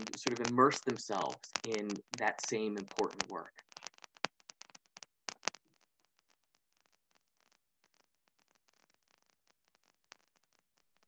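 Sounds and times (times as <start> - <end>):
small irregular clicks and taps: 0.0 - 5.8.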